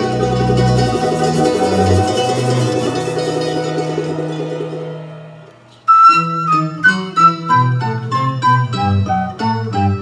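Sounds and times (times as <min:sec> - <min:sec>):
plucked string tremolo: 0:00.0 - 0:10.0
flute melody: 0:05.8 - 0:10.0.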